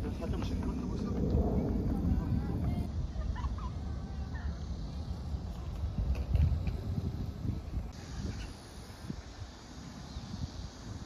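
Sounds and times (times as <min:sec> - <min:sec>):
low rumble: 0:00.0 - 0:03.1.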